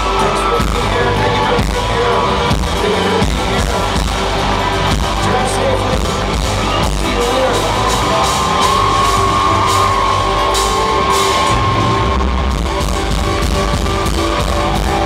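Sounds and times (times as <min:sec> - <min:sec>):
rock band playing live: 0:00.0 - 0:15.0.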